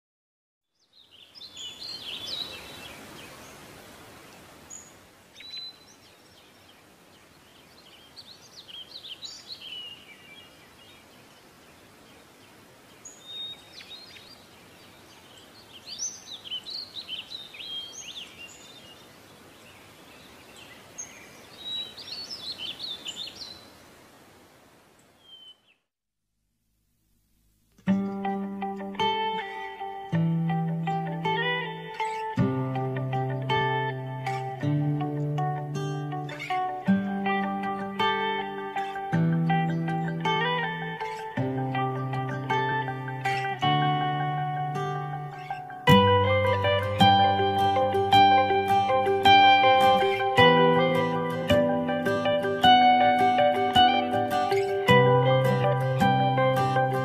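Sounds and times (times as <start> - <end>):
birds chirping and trilling: 0.8 - 24.0, 25.0 - 25.8, 29.1 - 57.0
steady outdoor hiss: 0.8 - 25.8, 26.4 - 57.0.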